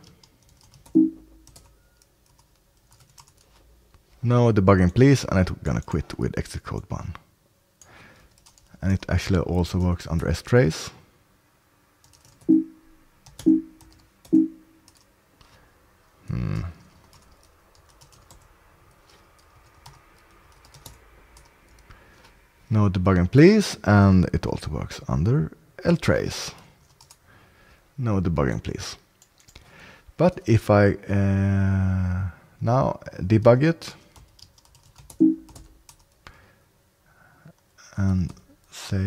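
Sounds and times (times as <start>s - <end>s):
typing on computer keyboard: 0.0s - 3.6s, 8.3s - 8.7s, 12.0s - 12.5s, 13.2s - 15.1s, 17.0s - 21.8s, 26.9s - 27.2s, 34.1s - 36.2s.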